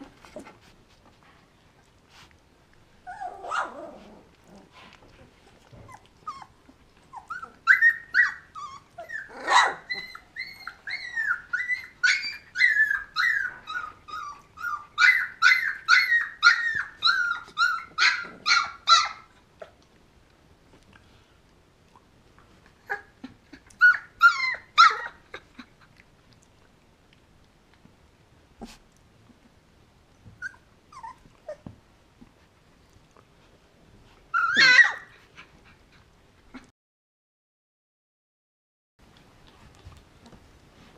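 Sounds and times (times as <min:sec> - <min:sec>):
puppies whining and yipping: 0:03.0 - 0:04.3, 0:05.5 - 0:19.4, 0:22.8 - 0:25.8, 0:30.3 - 0:31.8, 0:34.2 - 0:35.9
puppy yelp: 0:03.1 - 0:04.1, 0:05.8 - 0:19.3, 0:22.8 - 0:25.7, 0:30.4 - 0:31.7, 0:34.3 - 0:35.2.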